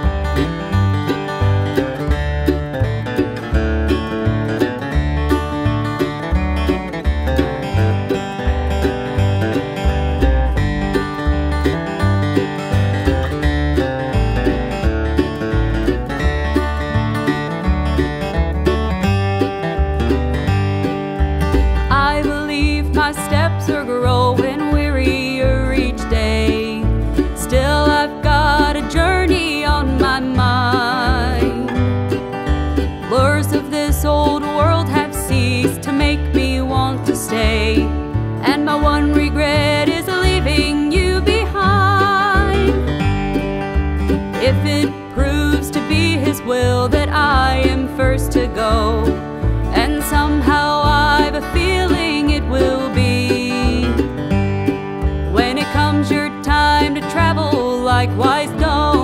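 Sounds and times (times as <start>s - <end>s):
bluegrass band playing: 0.0s - 59.0s
upright bass notes: 0.0s - 59.0s.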